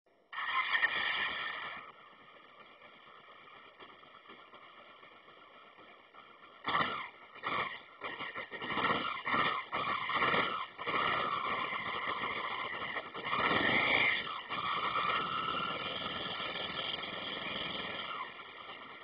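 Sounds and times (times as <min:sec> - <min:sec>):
motorcycle engine revving: 0:00.3 - 0:19.0.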